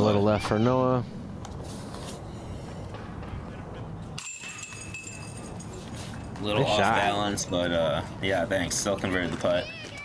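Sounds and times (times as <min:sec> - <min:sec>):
faint high ringing: 0:04.2 - 0:06.0.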